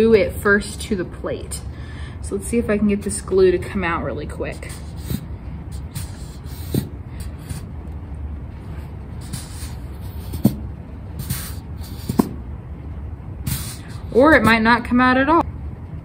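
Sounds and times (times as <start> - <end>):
glue bottle hissing air: 4.6 - 7.7, 9.1 - 12.4, 13.4 - 14.4.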